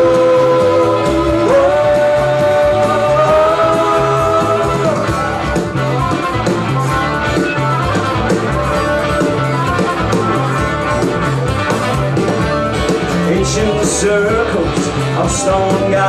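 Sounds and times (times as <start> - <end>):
electric guitar: 0.0 - 16.0
repeating bass line: 0.0 - 16.0.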